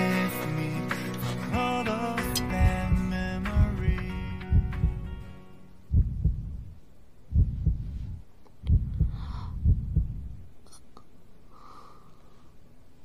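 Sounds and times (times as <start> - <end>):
song: 0.0 - 5.8
heartbeat thumps: 2.2 - 5.3, 5.9 - 10.4.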